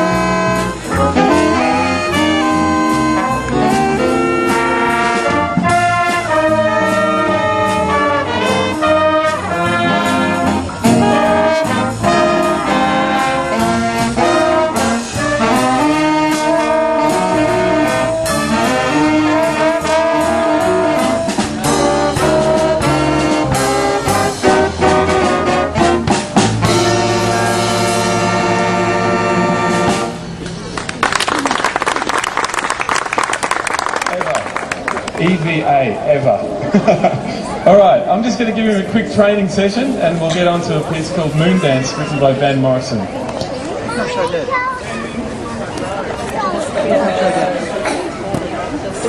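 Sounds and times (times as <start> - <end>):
big band playing jazz: 0.0 - 31.0, 33.5 - 49.0.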